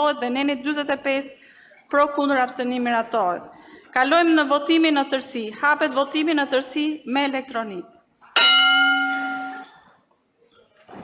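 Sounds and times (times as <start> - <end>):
electronic bell-like chime: 8.4 - 9.8.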